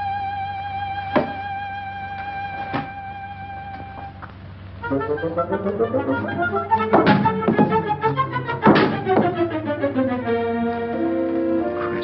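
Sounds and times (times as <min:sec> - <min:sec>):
woodwind-led orchestral music: 0:04.8 - 0:12.0.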